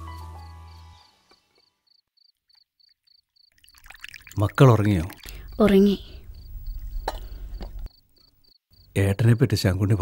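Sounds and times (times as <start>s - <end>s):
crickets chirping: 0.1s - 10.0s.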